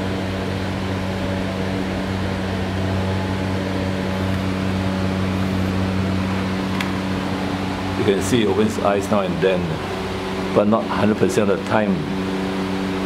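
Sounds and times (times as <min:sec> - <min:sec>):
steady low machine hum: 0:00.0 - 0:13.0.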